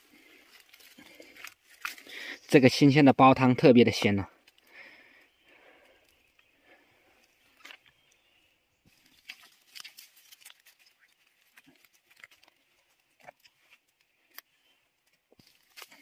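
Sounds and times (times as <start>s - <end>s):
crackles of dry leaves: 0.0s - 3.5s, 4.4s - 16.0s
hands picking mushrooms: 0.0s - 16.0s.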